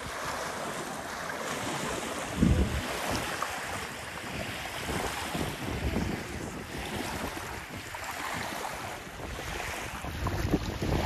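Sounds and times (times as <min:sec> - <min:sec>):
waves lapping at shore: 0:00.0 - 0:11.0
wind buffeting microphone: 0:01.8 - 0:11.0.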